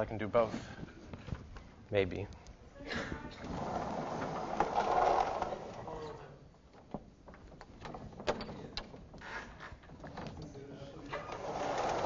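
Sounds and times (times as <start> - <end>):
sliding panel rumbling along frame: 3.4 - 5.8, 11.1 - 12.0.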